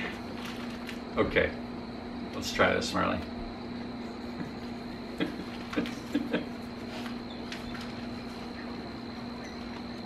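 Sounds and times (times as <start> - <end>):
low electrical hum: 0.0 - 10.0
stifled laughs: 5.1 - 6.7.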